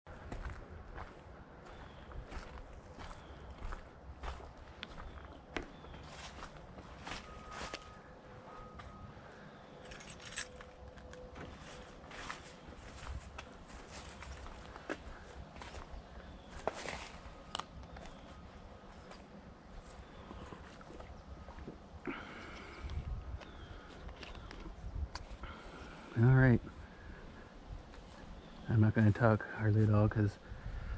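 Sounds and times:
footsteps on dry leaves: 0.3s - 8.0s, 11.4s - 17.5s.

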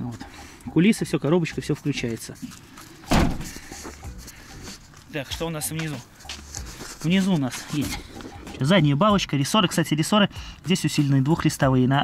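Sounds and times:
van door slamming: 3.1s - 3.6s.

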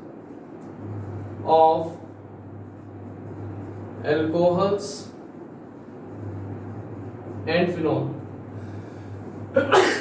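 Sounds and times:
steady low hum: 0.0s - 10.0s
man sneezing: 9.5s - 10.0s.

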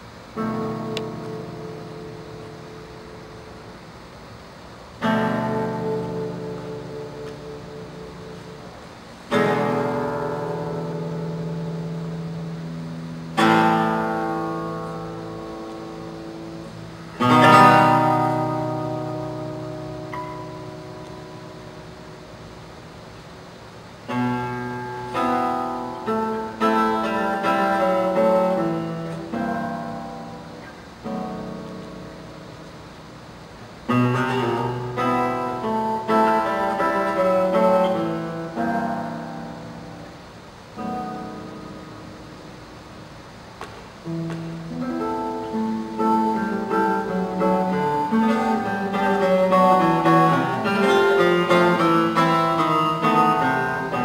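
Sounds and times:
nylon-string guitar chords: 0.0s - 54.0s.

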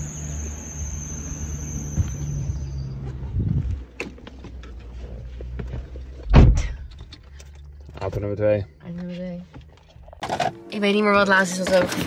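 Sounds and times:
high-pitched whine: 0.0s - 3.0s.

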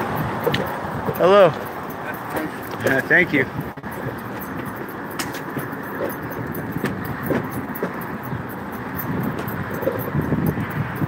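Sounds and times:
street traffic: 0.0s - 11.0s
wheeled rig rolling on concrete: 0.0s - 11.0s.

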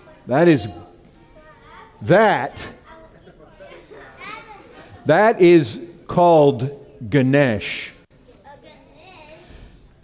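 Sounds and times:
children talking: 0.0s - 5.2s, 8.2s - 10.0s.

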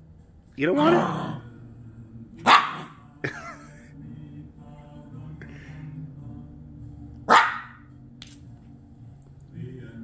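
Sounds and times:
puppy barking: 2.4s - 3.0s, 7.3s - 7.8s.

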